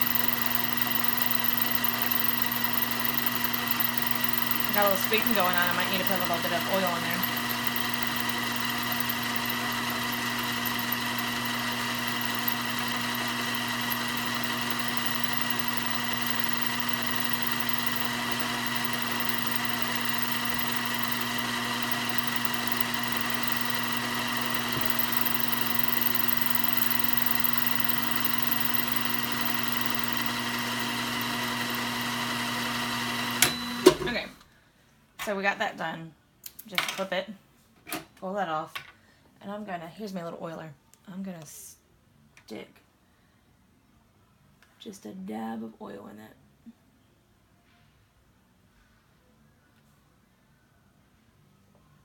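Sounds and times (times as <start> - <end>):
sewing machine humming: 0.0 - 34.3.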